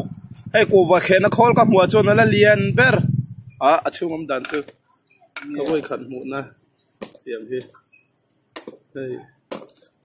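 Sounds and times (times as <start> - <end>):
people talking: 0.0 - 4.7, 5.4 - 6.5, 9.0 - 9.4.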